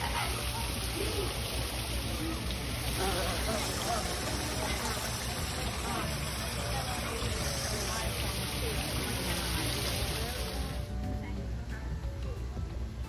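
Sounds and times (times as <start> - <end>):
water running over small waterfall: 0.0 - 11.0.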